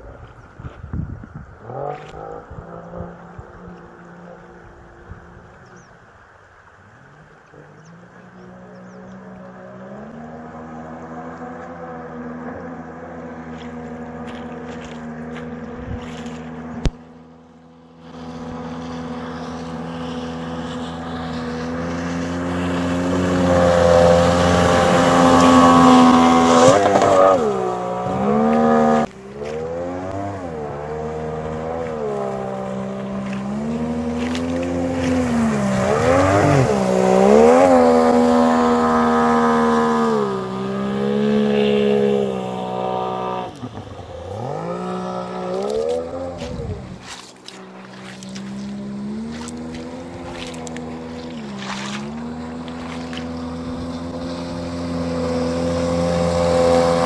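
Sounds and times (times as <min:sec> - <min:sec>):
outboard jet motor: 0:00.0 - 0:57.0.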